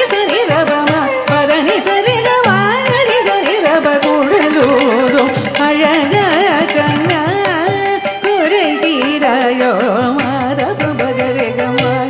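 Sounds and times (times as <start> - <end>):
percussion strokes: 0.0 - 12.0
woman singing classical melody: 0.0 - 12.0.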